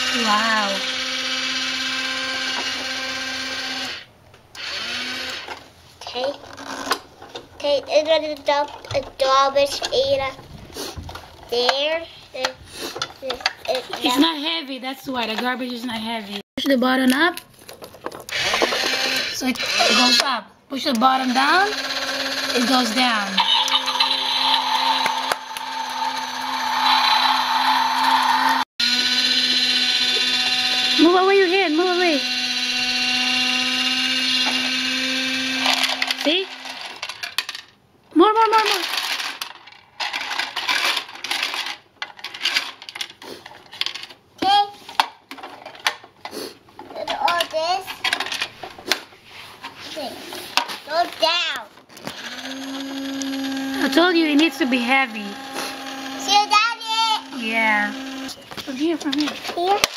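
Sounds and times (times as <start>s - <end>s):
small electric motor whirring: 0.0s - 5.6s, 18.3s - 20.3s, 21.2s - 36.9s, 52.0s - 59.3s
plastic toy handling clicks: 12.4s - 14.0s, 16.6s - 20.3s, 38.7s - 46.1s.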